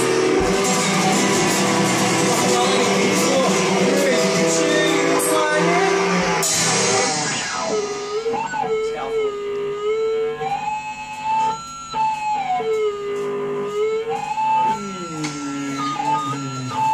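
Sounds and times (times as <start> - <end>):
drum kit: 0.0 - 16.9
electric guitars: 0.0 - 16.9.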